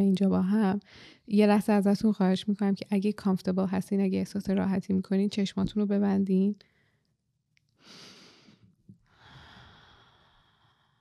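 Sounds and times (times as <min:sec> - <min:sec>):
soft breath out: 0:07.8 - 0:11.0.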